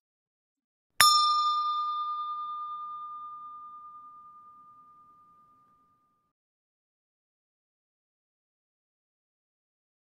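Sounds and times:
notification bell ringing: 1.0 - 6.2.

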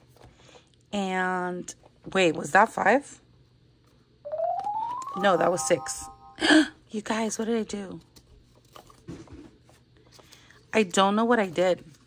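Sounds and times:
synthesized rising tone: 4.3 - 6.5.

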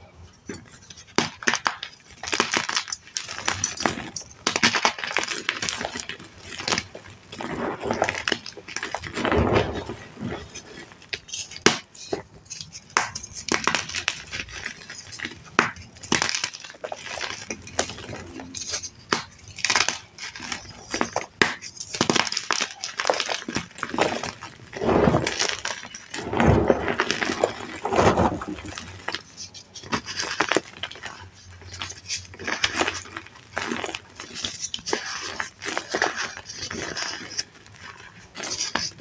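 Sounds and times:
hands crumbling chalk: 0.5 - 39.0.

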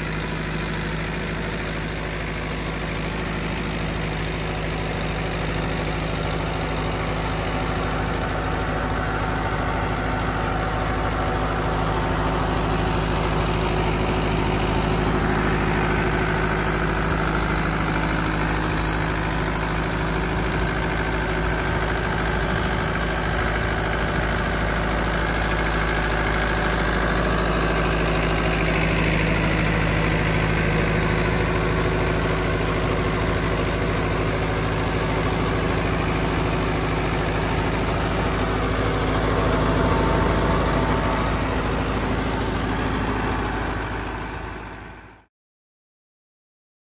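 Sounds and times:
tractor diesel engine under load: 0.0 - 45.3.

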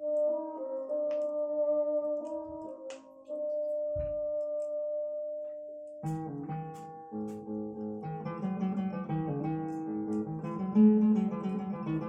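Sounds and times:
record surface ticks: 5.8 - 11.3.

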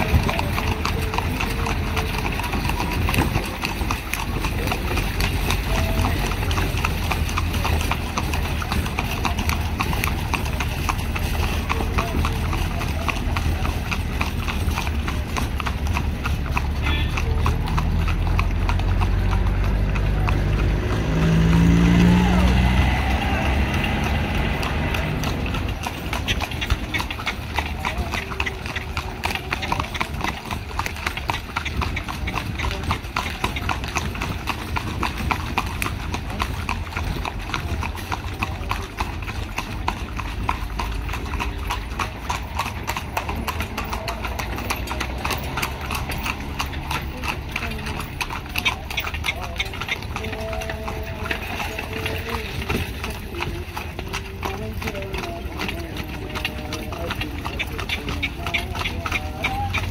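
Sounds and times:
hooves clip-clopping on asphalt: 0.0 - 59.9
motor vehicle passing: 0.0 - 59.9.

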